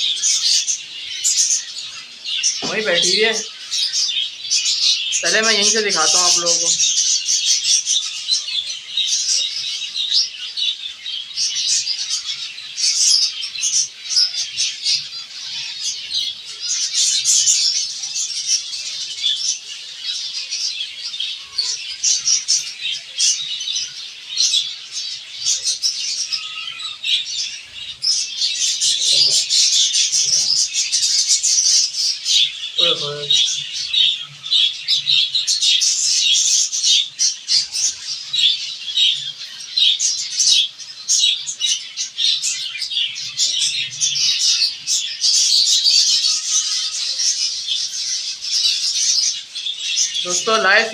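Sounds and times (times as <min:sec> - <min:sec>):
finches chirping: 0:00.0 - 0:50.9.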